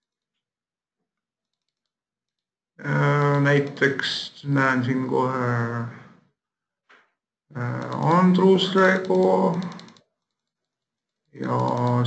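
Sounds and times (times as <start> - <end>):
man speaking: 2.8 - 6.2, 7.5 - 9.8, 11.4 - 12.0
faint small clicks: 7.7 - 10.8, 11.5 - 12.0.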